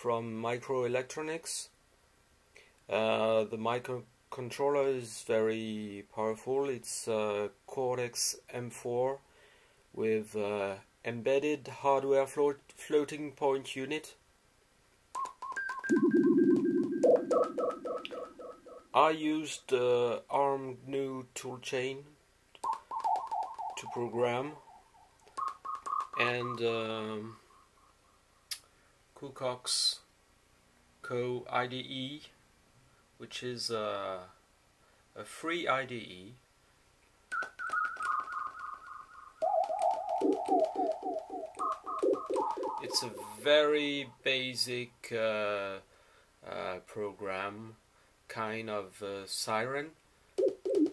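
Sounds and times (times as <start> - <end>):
synthesizer siren-like chirps: 15.6 - 19.0, 22.6 - 26.6, 37.3 - 43.5, 50.4 - 50.9.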